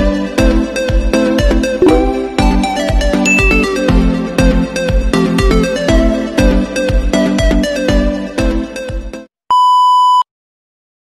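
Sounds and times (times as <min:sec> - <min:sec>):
test-tone beep: 0:01.8 - 0:02.3, 0:03.3 - 0:03.8
electronic music with steady beat: 0:01.8 - 0:04.0.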